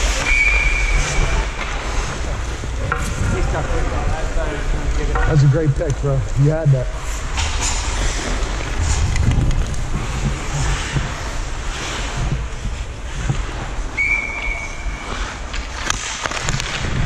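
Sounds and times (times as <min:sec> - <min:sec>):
ice skating rink noise: 0:00.0 - 0:17.0
referee's whistle blast: 0:00.2 - 0:01.2, 0:14.0 - 0:15.0
wind rushing over microphone: 0:00.8 - 0:13.8.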